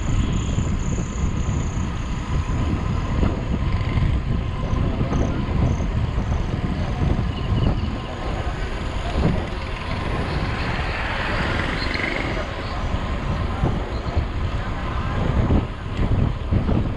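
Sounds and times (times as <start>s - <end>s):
tyre and road noise: 0.0s - 16.9s
wind buffeting microphone: 0.0s - 16.9s.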